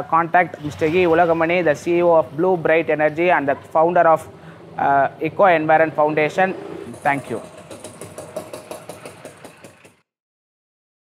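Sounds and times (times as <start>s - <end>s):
engine idling: 6.9s - 10.0s.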